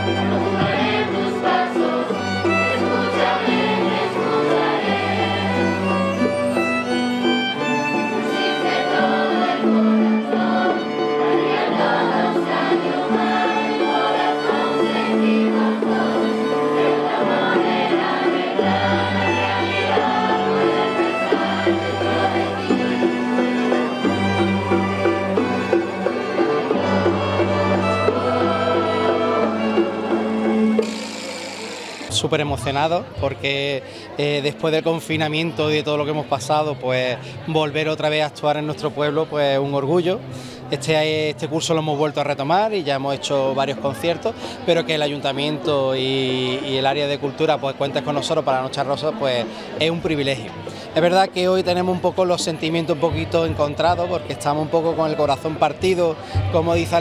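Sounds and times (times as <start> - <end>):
plucked string ensemble playing: 0.0 - 57.0.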